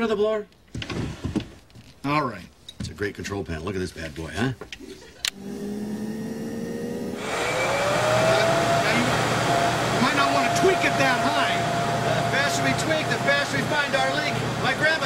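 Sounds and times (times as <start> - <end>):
fan motor hum and rushing air: 5.3 - 15.0.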